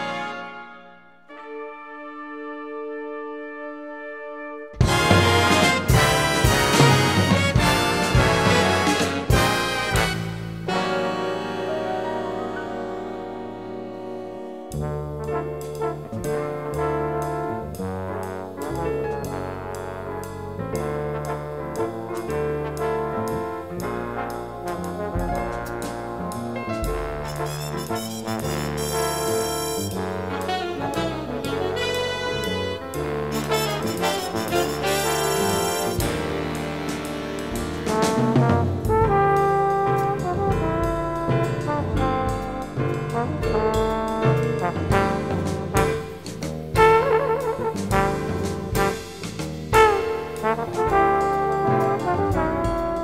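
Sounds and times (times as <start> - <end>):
brass section chord: 0.0 - 16.1, 26.9 - 53.0
big band jazz: 0.0 - 53.0.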